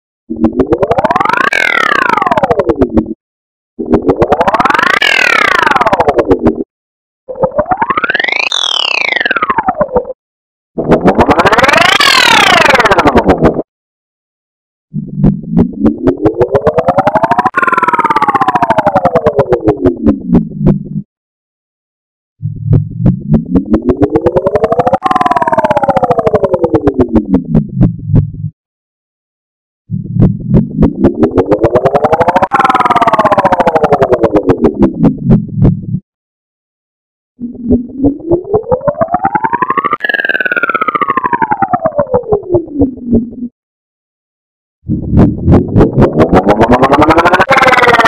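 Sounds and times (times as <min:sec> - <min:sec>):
pulsing electronic tone gliding: 0:00.3 - 0:03.2, 0:03.8 - 0:06.7, 0:07.3 - 0:10.2, 0:10.8 - 0:13.7, 0:14.9 - 0:21.1, 0:22.4 - 0:28.5, 0:29.9 - 0:36.0, 0:37.4 - 0:43.5, 0:44.9 - 0:48.0.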